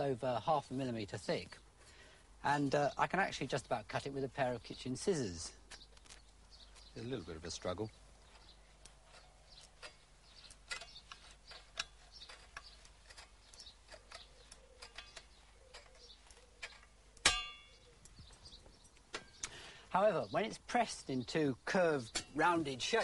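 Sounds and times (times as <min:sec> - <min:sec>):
metallic clank and ring: 0:17.2 - 0:17.8.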